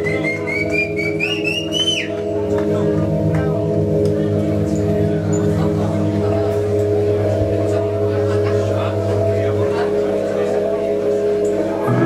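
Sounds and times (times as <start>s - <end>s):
synthesizer droning chord: 0.0s - 12.0s.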